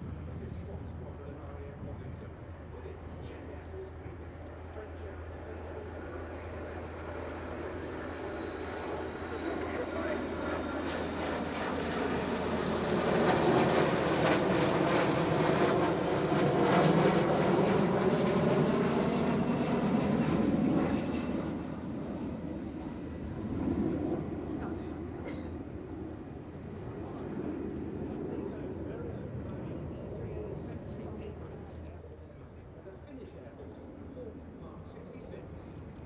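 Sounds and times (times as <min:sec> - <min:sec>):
jet engines passing overhead: 0:00.0 - 0:36.0.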